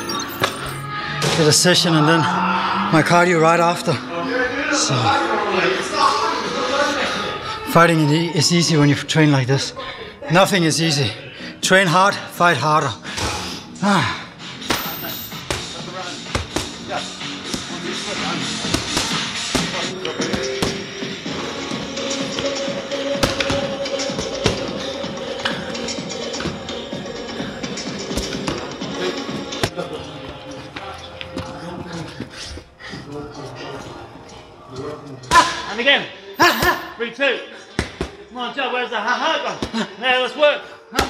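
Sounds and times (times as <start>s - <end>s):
background music: 0.0s - 41.0s.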